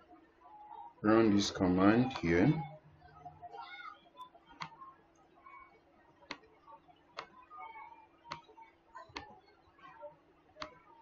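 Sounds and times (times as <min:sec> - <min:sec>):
computer mouse clicks: 0:04.6 - 0:04.8, 0:10.6 - 0:10.8.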